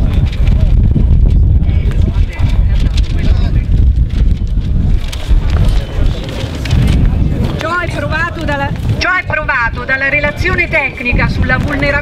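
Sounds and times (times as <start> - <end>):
faint voices: 0.0 - 12.0
wind buffeting microphone: 0.0 - 12.0.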